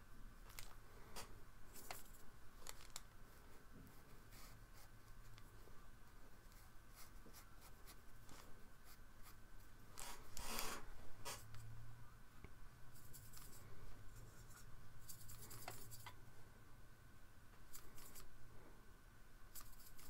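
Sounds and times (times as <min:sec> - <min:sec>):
brush crackling in plastic palette: 0:00.4 - 0:11.7, 0:13.0 - 0:16.2, 0:17.6 - 0:18.3, 0:19.5 - 0:20.0
paintbrush strokes on paper: 0:03.3 - 0:09.4, 0:12.9 - 0:16.2, 0:17.7 - 0:18.3.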